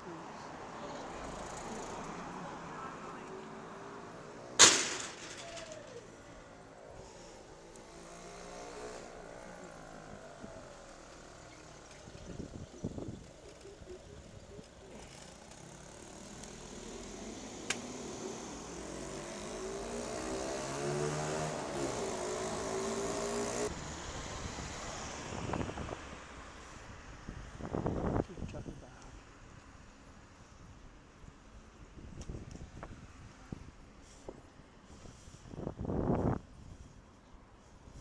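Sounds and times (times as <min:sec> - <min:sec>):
car passing close by: 0:16.2 - 0:26.6.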